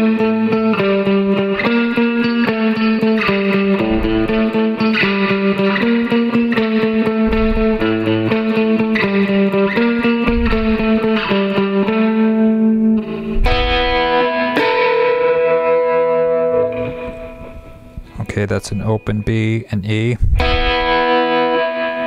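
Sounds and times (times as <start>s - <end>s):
electric guitar surf riff: 0.0s - 18.2s, 20.3s - 22.0s.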